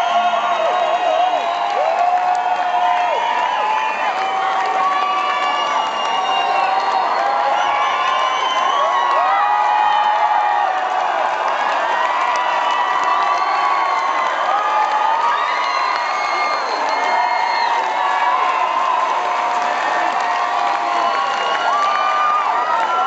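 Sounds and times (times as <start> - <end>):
concert crowd cheering and shouting: 0.0 - 23.0.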